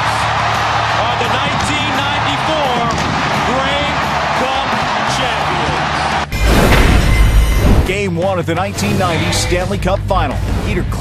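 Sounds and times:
excited voices celebrating: 0.0 - 6.3
whoosh and slam sound effect: 6.4 - 7.9.

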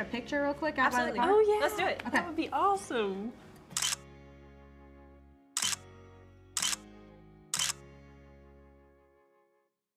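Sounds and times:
camera shutter clicks: 3.7 - 4.1, 5.6 - 5.9, 6.6 - 6.9, 7.5 - 7.9.

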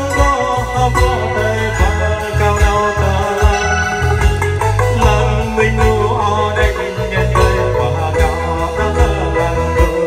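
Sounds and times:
live band music: 0.0 - 10.0
man singing into a microphone: 0.0 - 10.0.

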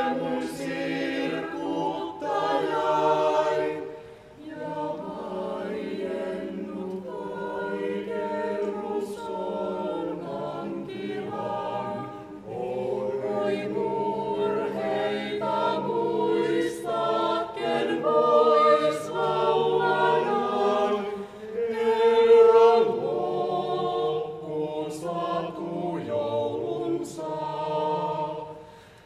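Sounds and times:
choir singing a cappella: 0.0 - 29.0.

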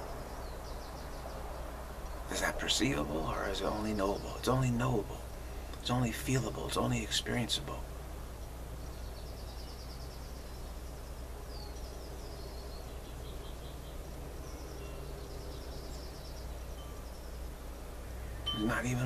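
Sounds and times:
bird trills and chirps: 0.0 - 19.0
steady low hum: 0.0 - 19.0.

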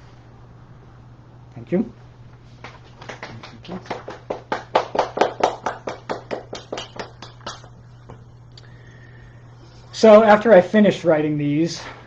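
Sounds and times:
hands clapping: 2.6 - 8.2.

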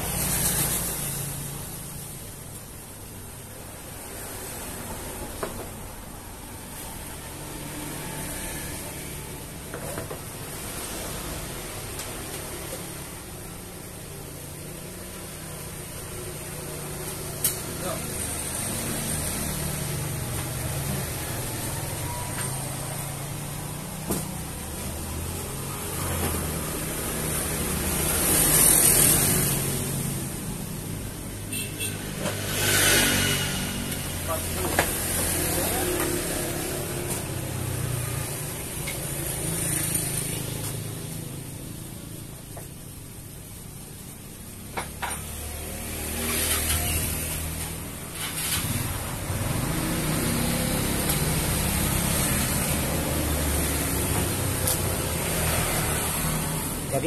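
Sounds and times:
road vehicles passing: 0.0 - 57.0.

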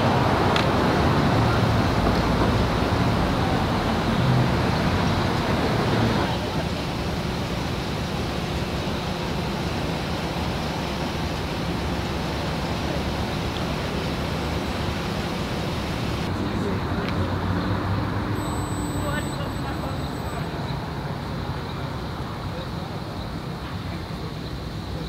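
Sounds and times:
street traffic noise: 0.0 - 25.0.

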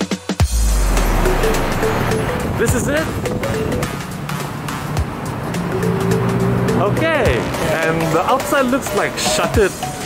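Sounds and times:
background music: 0.0 - 10.0
street traffic: 0.4 - 10.0
vehicle engine humming: 0.4 - 10.0.

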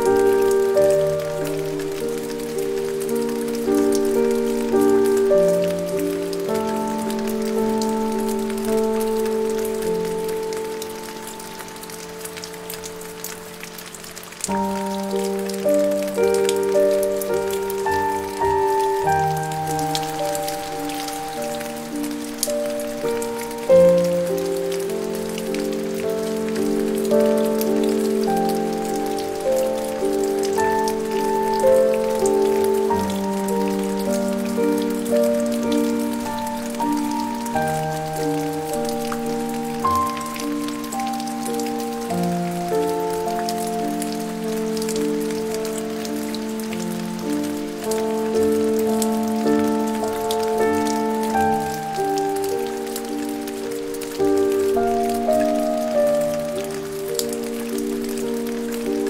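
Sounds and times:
rain patter: 0.0 - 59.0
slow soft piano music: 0.0 - 59.0.

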